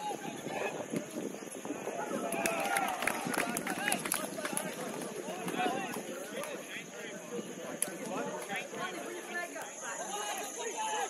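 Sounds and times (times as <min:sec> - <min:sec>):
footballers shouting: 0:00.0 - 0:11.0.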